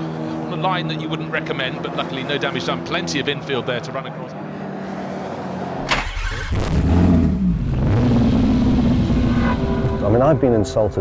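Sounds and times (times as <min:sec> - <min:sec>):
racing car engine: 0:00.0 - 0:11.0.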